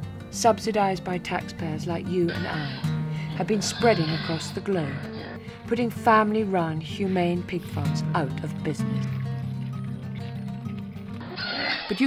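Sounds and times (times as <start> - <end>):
background music with low notes: 0.0 - 11.4
pigs squealing: 2.3 - 5.5, 6.9 - 7.4, 10.1 - 12.0.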